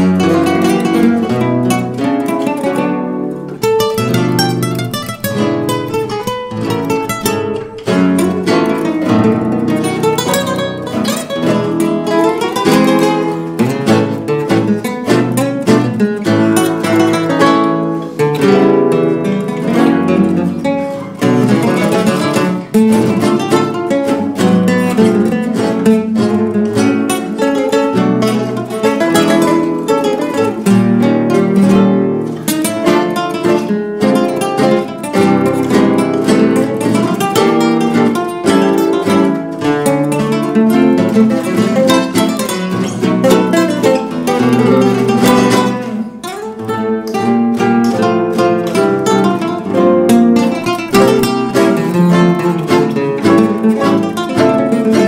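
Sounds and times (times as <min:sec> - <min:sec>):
classical guitars playing tango: 0:00.0 - 0:55.0.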